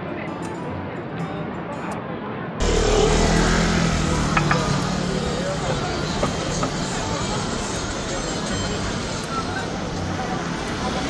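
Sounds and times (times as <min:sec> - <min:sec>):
voices of passers-by: 0:00.0 - 0:11.0
vehicle engine hum: 0:02.6 - 0:11.0.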